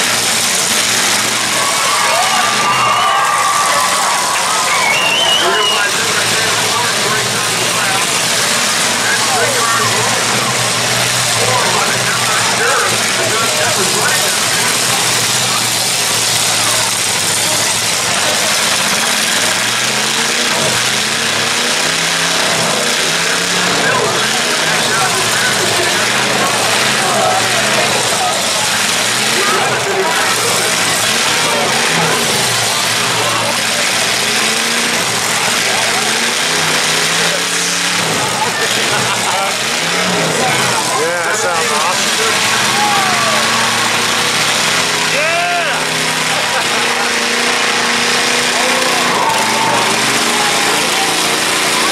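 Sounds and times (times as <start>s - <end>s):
car engines revving: 0.0s - 51.9s
crowd chatter: 0.0s - 51.9s.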